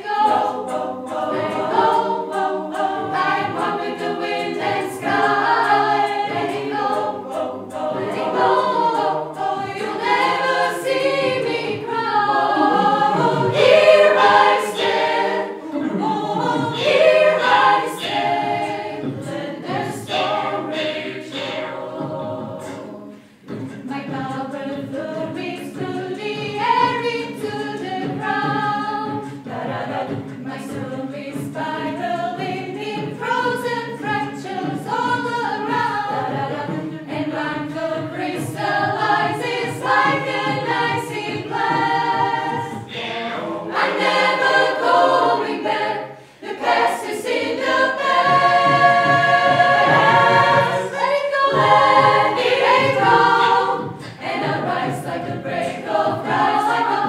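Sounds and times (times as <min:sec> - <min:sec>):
choir singing a cappella: 0:00.0 - 0:57.0.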